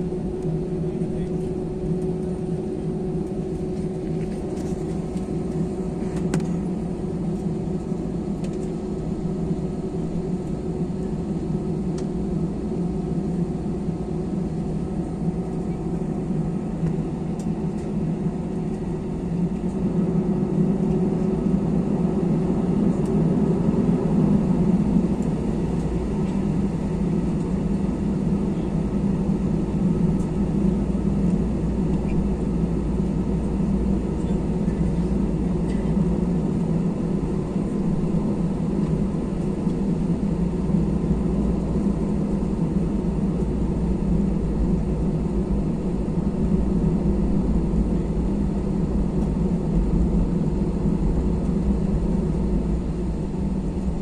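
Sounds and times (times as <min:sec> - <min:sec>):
jet engines heard from cabin: 0:00.0 - 0:54.0.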